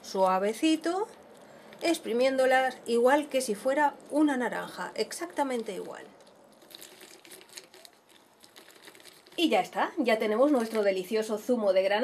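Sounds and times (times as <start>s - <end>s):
fruit crackling and squishing on juicer: 0.0s - 11.9s.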